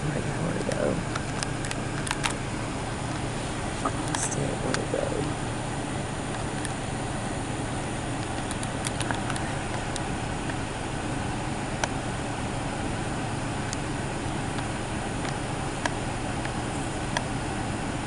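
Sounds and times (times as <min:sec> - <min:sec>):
low background rumble: 0:00.0 - 0:18.0.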